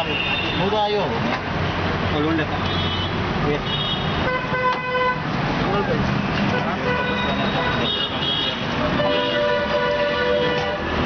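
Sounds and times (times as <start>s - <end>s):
traffic: 0.0s - 11.0s
vehicle horn: 3.7s - 5.2s, 6.8s - 11.0s.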